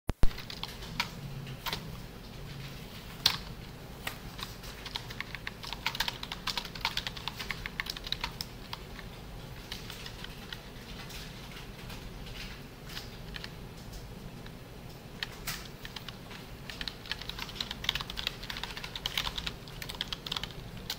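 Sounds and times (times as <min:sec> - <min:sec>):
keyboard typing: 0:00.2 - 0:20.9.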